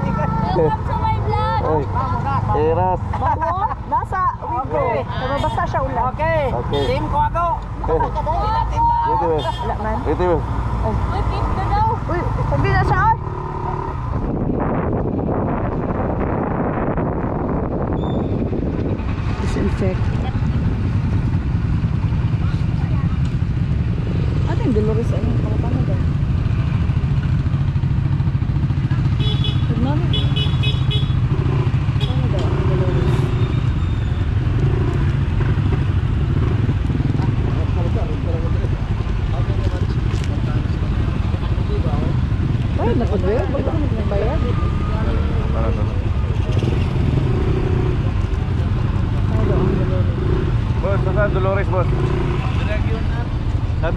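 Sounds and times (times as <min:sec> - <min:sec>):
voices: 0:00.0 - 0:14.1, 0:21.8 - 0:26.3, 0:28.6 - 0:33.8, 0:34.5 - 0:53.9
motorcycle engine running: 0:09.5 - 0:53.9.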